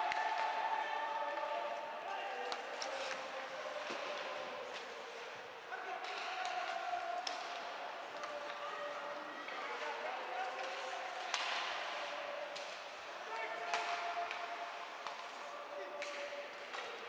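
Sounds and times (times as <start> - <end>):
hockey sticks hitting puck: 0.0 - 1.6, 2.4 - 5.3, 6.0 - 17.0
puck hitting boards: 13.7 - 15.3.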